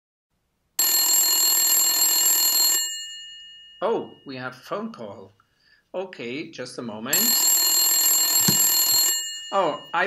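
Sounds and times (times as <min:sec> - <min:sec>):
telephone ringing: 0:00.8 - 0:04.3, 0:07.1 - 0:10.0
short knock: 0:08.5 - 0:08.7.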